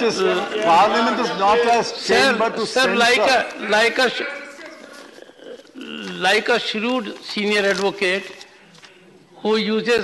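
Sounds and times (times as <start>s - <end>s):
man speaking: 0.0s - 4.4s, 5.8s - 8.5s.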